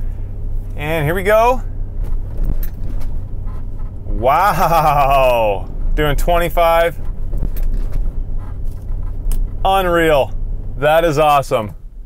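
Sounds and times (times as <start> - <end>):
road and engine rumble in car cabin: 0.0 - 12.0.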